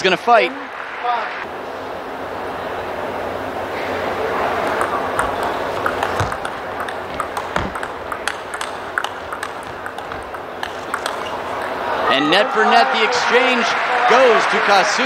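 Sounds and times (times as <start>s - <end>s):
crowd noise in hall: 0.0s - 15.0s
table tennis ball clicking: 4.6s - 11.9s.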